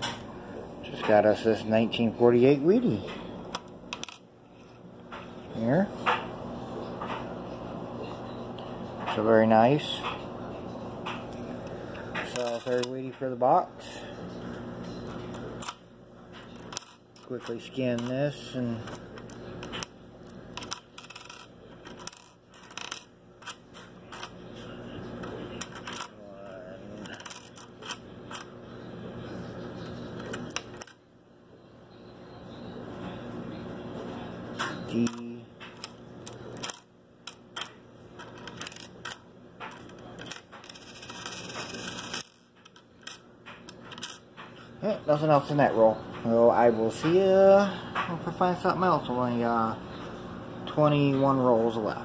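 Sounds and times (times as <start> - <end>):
coins clicking on wooden table: 12.3 - 12.9, 16.6 - 18.1, 20.5 - 24.3, 25.6 - 26.1, 27.0 - 28.5, 36.6 - 44.5.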